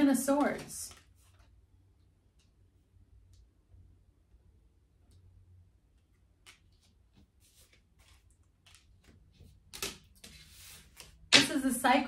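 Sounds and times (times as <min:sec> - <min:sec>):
cards sliding rustle: 0:06.4 - 0:11.2.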